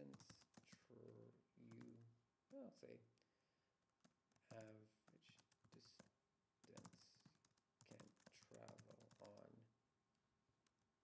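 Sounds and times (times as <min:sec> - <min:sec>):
typing on computer keyboard: 0:00.0 - 0:02.1, 0:04.0 - 0:09.5.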